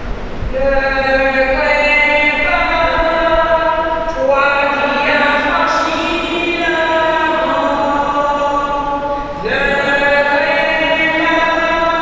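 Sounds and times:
person singing a church chant: 0:00.5 - 0:12.0.

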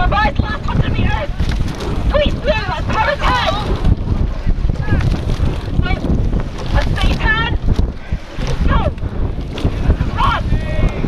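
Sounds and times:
water rushing along hull: 0:00.0 - 0:11.0
wind buffeting microphone: 0:00.0 - 0:11.0.

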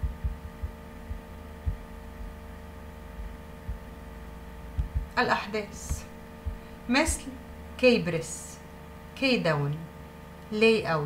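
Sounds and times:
soft low thumps: 0:00.0 - 0:05.2, 0:05.8 - 0:07.6
electrical hum: 0:00.0 - 0:11.0.

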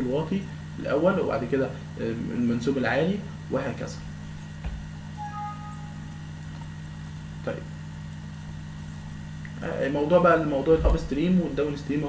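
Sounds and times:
low electrical hum: 0:00.0 - 0:12.0
system alert chime: 0:05.2 - 0:06.6.

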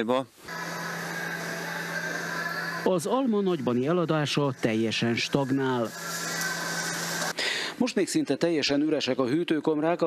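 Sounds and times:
person speaking: 0:02.8 - 0:07.2.

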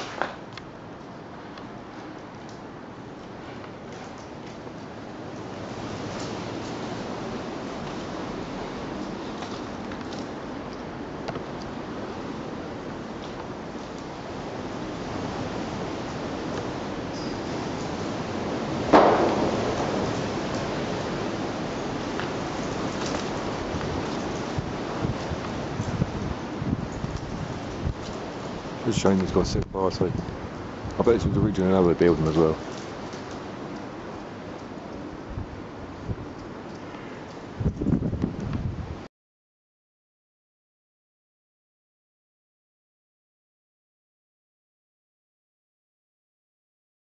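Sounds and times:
wind rushing: 0:18.0 - 0:22.5
sharp knock: 0:18.9 - 0:20.2.

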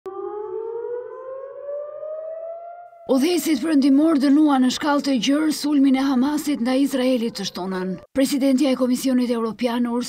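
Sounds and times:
air-raid siren rising: 0:00.0 - 0:03.6.

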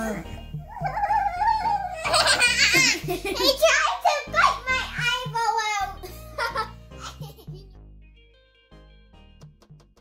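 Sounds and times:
girls laughing and chattering: 0:00.7 - 0:03.8
music with stepping bass line: 0:08.8 - 0:10.0.

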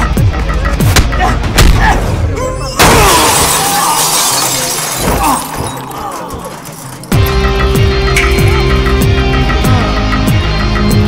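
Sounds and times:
film music: 0:00.0 - 0:11.0
glass shattering: 0:02.8 - 0:07.3.

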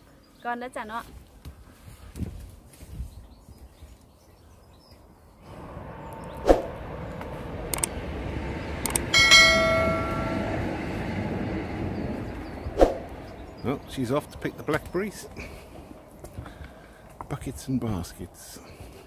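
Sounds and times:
steady rushing noise: 0:05.4 - 0:14.0
notification bell chime: 0:09.2 - 0:10.6.

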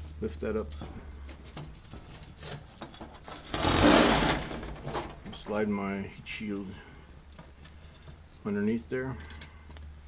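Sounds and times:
metal sheet scraping on mesh: 0:03.2 - 0:05.2.

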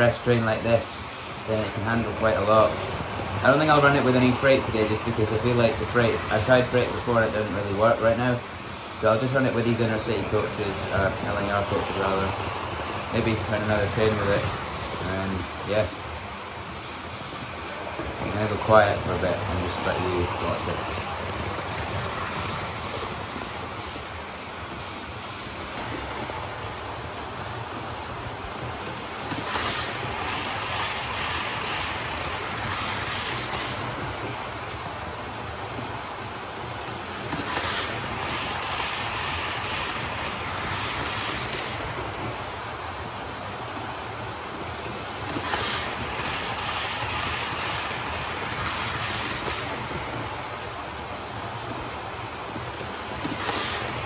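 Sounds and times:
model train running whirr: 0:00.0 - 0:54.0
wheels clicking over track: 0:00.0 - 0:54.0.

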